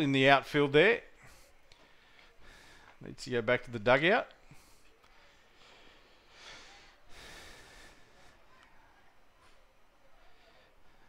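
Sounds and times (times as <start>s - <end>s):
soft breaths on microphone: 1.1s - 3.1s, 4.4s - 11.0s.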